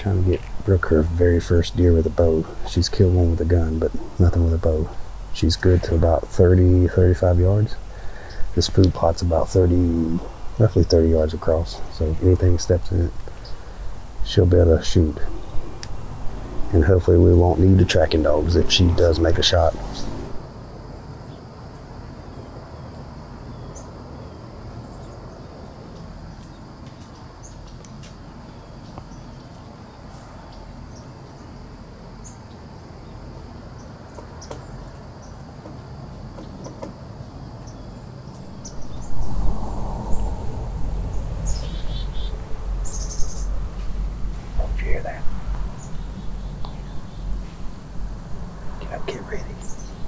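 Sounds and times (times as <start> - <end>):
high insect drone: 0.0 - 50.0
faint bird chirps: 37.6 - 50.0
low rumble: 38.4 - 50.0.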